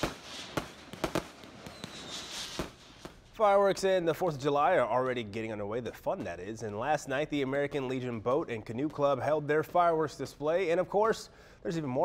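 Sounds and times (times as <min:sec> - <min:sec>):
fireworks crackling hiss: 0:00.0 - 0:03.4
fireworks bangs: 0:00.0 - 0:05.4.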